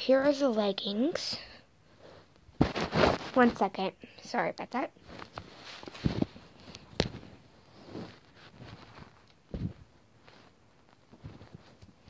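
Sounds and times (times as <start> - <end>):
faint rustling: 1.9 - 3.8, 5.0 - 12.0
dull handling thumps: 8.8 - 9.9.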